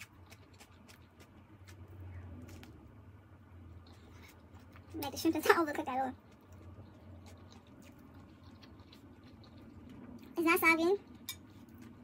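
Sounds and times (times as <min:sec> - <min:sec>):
faint chewing: 0:00.0 - 0:03.0, 0:03.7 - 0:10.4, 0:11.0 - 0:12.0
low steady hum: 0:00.0 - 0:12.0.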